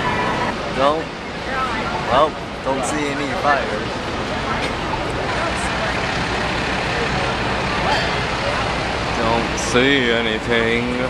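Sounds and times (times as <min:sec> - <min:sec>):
diesel engine idling: 0:00.0 - 0:11.0
scattered voices: 0:00.0 - 0:11.0
street noise: 0:00.0 - 0:11.0.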